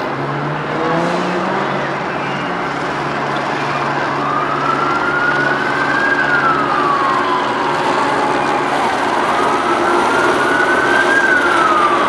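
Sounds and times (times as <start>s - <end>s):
car engines droning: 0.0s - 12.0s
street traffic noise: 0.0s - 12.0s.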